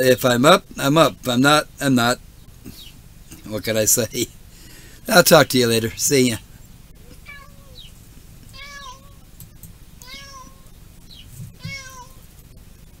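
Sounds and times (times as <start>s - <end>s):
cat meowing: 7.0s - 7.9s, 8.5s - 9.2s, 10.0s - 10.7s, 11.5s - 12.2s.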